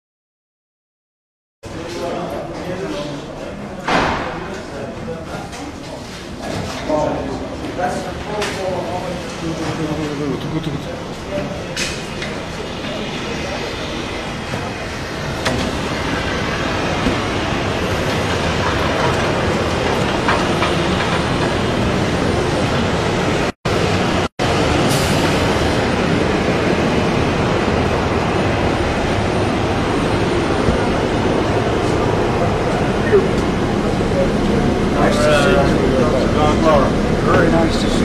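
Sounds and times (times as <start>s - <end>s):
engine and machinery noise: 1.6s - 38.0s.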